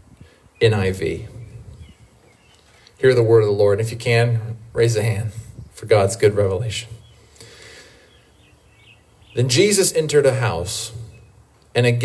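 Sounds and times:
faint bird chirps: 0.5s - 3.1s, 6.8s - 9.6s.

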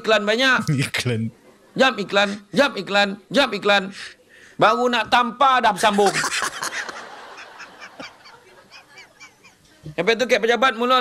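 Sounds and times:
man laughing hard: 5.9s - 9.5s.

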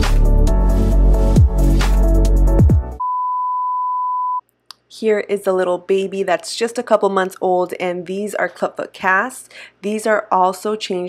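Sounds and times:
high-pitched test tone beep: 3.0s - 4.4s.

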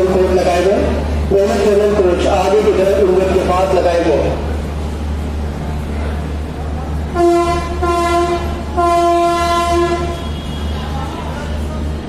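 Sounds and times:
locomotive horn blasts: 7.2s - 11.0s.

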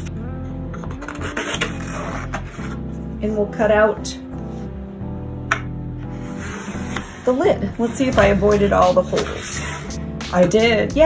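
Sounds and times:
background music: 0.0s - 11.0s
pencil scratching on wood: 6.2s - 10.0s.

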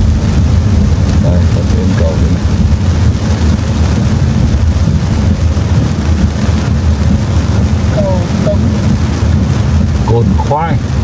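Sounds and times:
heavy rain on car roof: 0.0s - 11.0s
low road rumble: 0.0s - 11.0s.

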